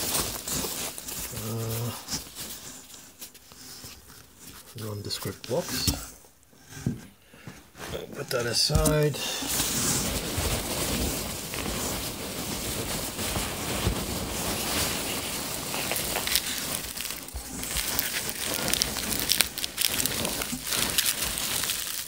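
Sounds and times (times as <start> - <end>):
rummaging through packing peanuts: 0.0 - 6.2, 7.8 - 22.0.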